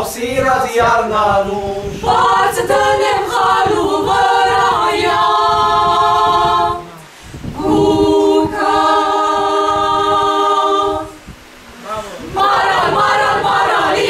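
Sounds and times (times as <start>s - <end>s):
choir singing a cappella: 0.0s - 11.3s, 12.2s - 14.0s.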